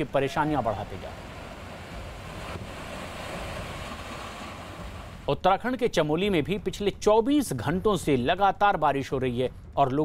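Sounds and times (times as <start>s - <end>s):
river in flood rushing: 0.0s - 5.3s.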